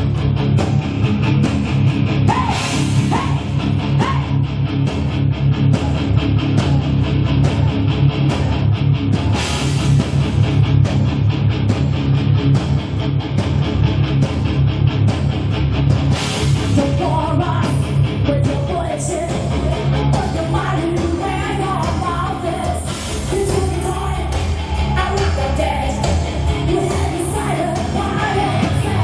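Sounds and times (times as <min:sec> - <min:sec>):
bass guitar: 0:00.0 - 0:29.0
distorted electric guitars: 0:00.0 - 0:29.0
drums: 0:00.0 - 0:29.0.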